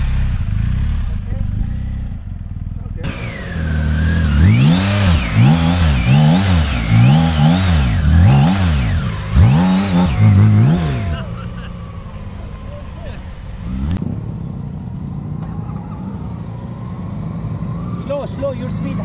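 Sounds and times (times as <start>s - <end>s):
motorcycle engine revving: 0.0s - 14.8s.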